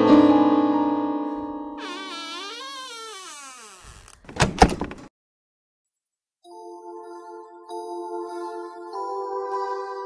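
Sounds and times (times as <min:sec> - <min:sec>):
door creaking: 0:01.8 - 0:05.1
door slamming: 0:01.8 - 0:05.1.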